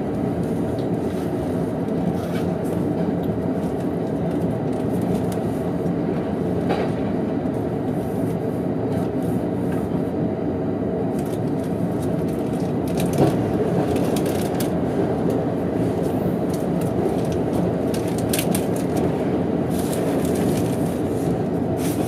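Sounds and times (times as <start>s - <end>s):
train wheels rumbling on rail: 0.0s - 22.0s.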